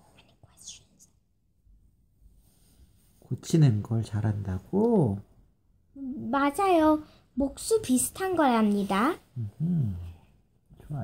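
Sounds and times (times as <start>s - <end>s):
faint breathy whisper: 0.0s - 1.2s.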